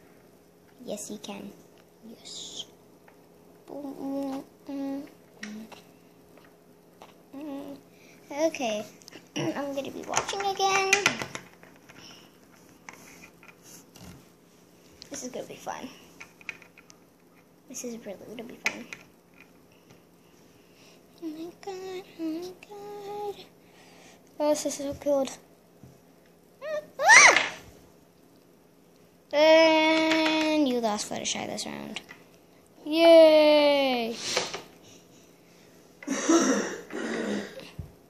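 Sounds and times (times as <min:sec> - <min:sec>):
child squealing: 0:26.6 - 0:27.6.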